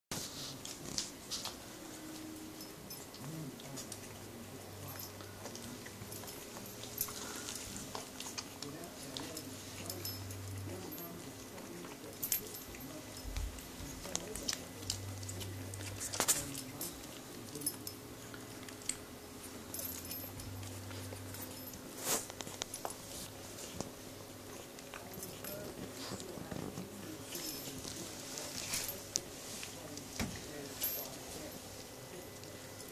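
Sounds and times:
faint low hum: 0:00.1 - 0:32.9
puppies rustling on a bed: 0:00.1 - 0:32.9
puppies suckling wet clicks: 0:03.0 - 0:10.0, 0:10.9 - 0:19.7.

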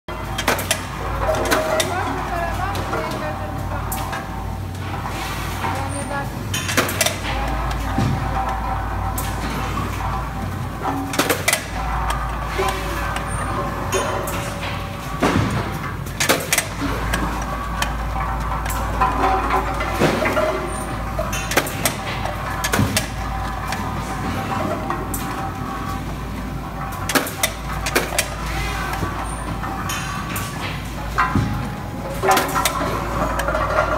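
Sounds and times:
low machine hum: 0:00.1 - 0:33.9.

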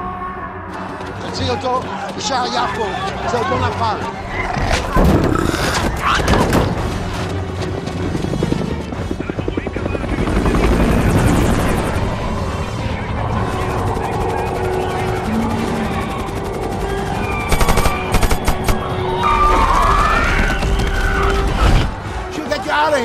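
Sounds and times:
helicopter rotor chopping: 0:01.1 - 0:19.8
rapid gunfire bursts: 0:17.4 - 0:18.9.

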